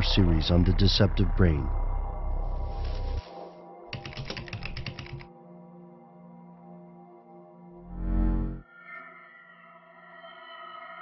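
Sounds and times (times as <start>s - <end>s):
soft ambient music: 0.0s - 11.0s
computer keyboard typing: 3.9s - 5.3s.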